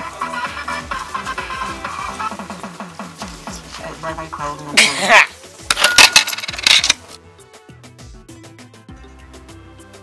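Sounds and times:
background music with steady beat: 0.0s - 10.0s
coins clattering in slot machine: 5.7s - 7.1s.

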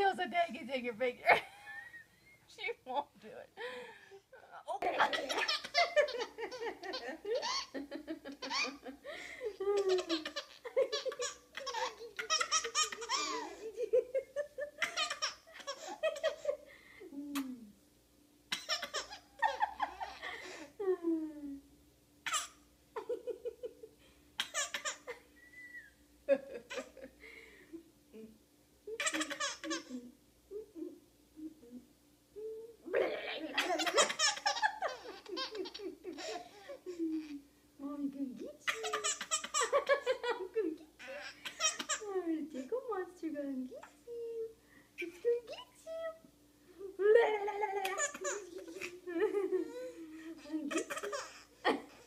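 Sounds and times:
baby giggling: 5.0s - 9.0s, 9.6s - 16.6s, 18.5s - 20.3s, 22.3s - 23.3s, 24.4s - 25.2s, 28.9s - 30.1s, 32.9s - 37.4s, 38.6s - 42.1s, 47.2s - 52.0s.

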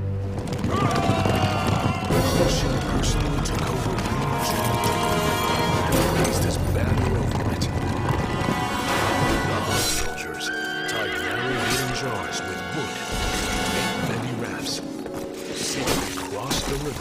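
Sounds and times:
horse hooves galloping: 0.0s - 12.0s
dramatic music: 0.0s - 17.0s
horse whinnying: 0.6s - 6.5s, 7.6s - 12.4s
soldiers shouting: 0.7s - 3.4s.

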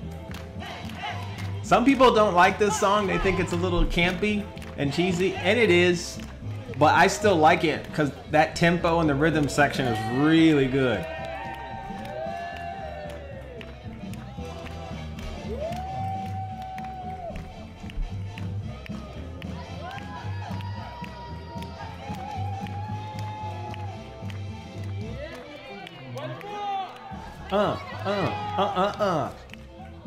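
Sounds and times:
swing dance music: 0.0s - 30.0s.

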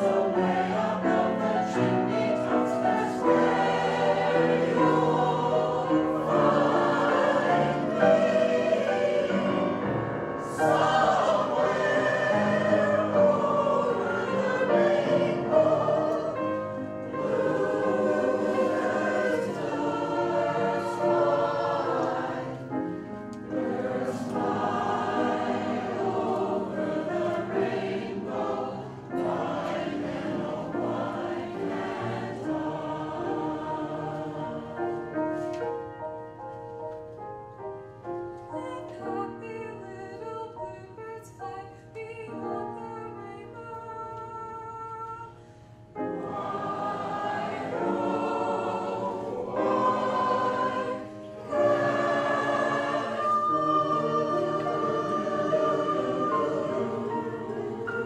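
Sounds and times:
mixed choir singing in harmony: 0.0s - 35.9s, 38.5s - 58.0s.

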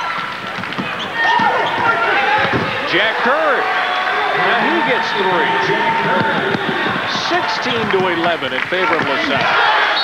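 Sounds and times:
sneakers squeaking on floor: 0.8s - 2.8s.

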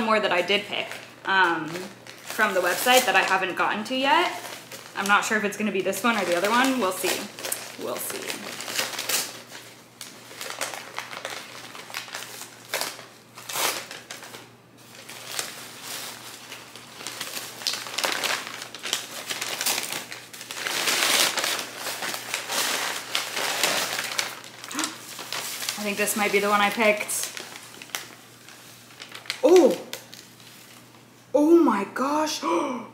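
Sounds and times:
paper wrapping crinkling: 0.0s - 31.1s.

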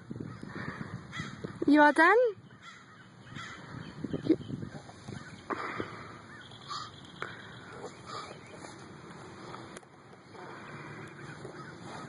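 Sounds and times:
low outdoor background noise: 0.0s - 12.0s
woman asking a question: 1.7s - 2.4s.

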